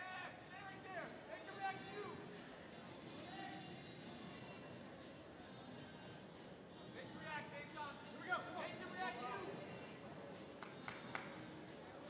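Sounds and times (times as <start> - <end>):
murmur of hall: 0.0 - 12.0.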